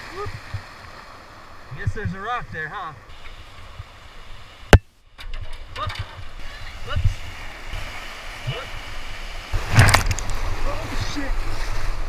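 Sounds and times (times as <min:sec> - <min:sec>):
whitewater river rushing: 0:06.4 - 0:12.0.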